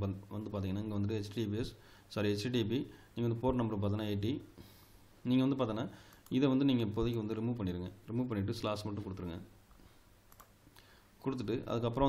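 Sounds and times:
man talking: 0.0s - 4.5s, 5.2s - 9.5s, 11.2s - 12.0s
computer keyboard clicks: 10.3s - 10.5s.

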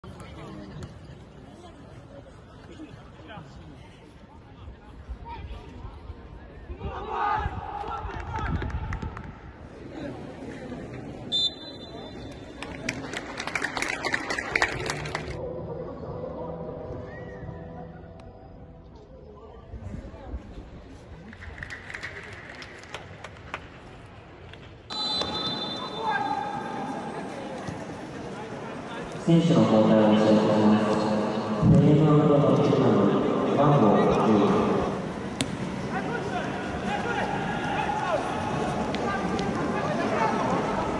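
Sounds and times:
faint stadium ambience: 0.0s - 40.9s
players calling out: 24.9s - 40.9s.

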